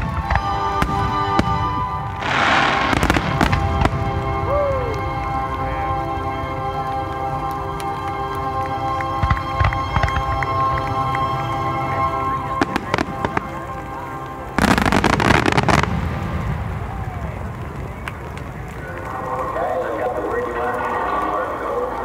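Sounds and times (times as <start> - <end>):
fireworks booming: 0.0 - 5.5, 12.3 - 19.4
rapid fireworks pops: 0.0 - 5.6, 7.1 - 22.0
music playing: 0.0 - 22.0.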